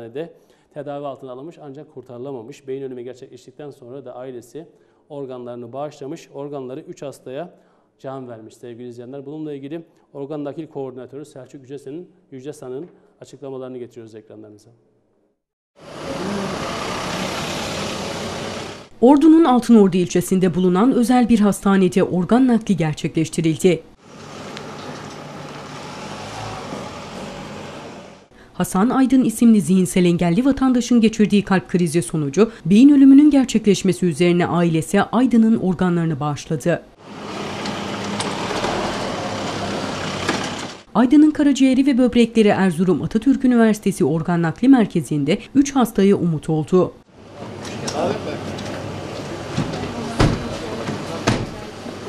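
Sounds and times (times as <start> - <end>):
road noise: 15.8 - 19.0, 24.0 - 28.4, 37.0 - 40.9, 47.1 - 52.0
van engine running: 15.8 - 19.0, 24.0 - 28.3, 37.0 - 40.9.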